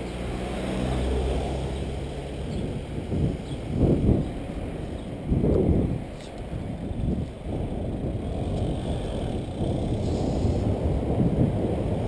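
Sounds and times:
car passing by: 0.0s - 3.1s
wind buffeting microphone: 1.0s - 12.0s.

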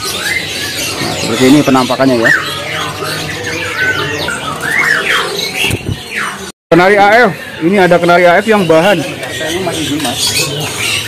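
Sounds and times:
songbirds chirping and whistling: 0.0s - 11.0s.

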